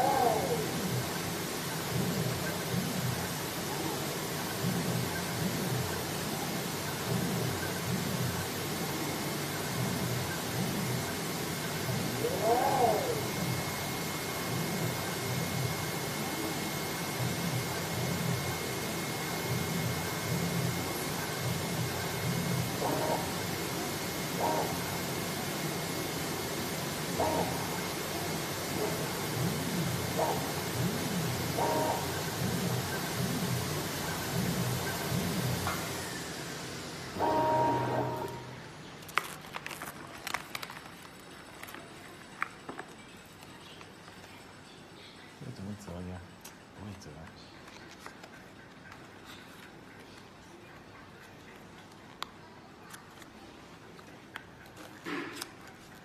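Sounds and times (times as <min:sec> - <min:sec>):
cutting machine running: 0:11.3 - 0:38.8.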